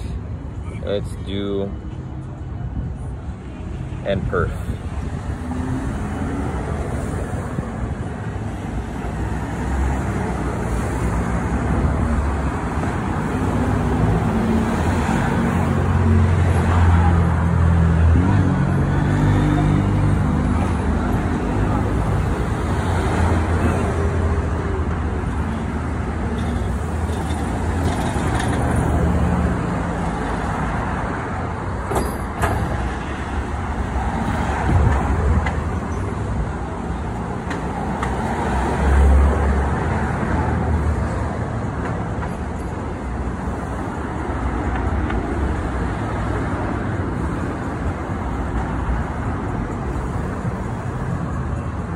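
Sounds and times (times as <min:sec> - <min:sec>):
road traffic passing: 0:00.0 - 0:51.9.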